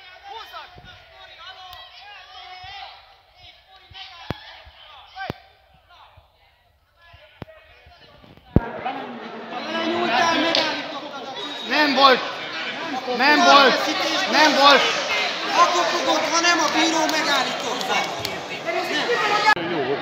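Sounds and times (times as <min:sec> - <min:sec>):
voices in large hall: 0:00.0 - 0:20.0.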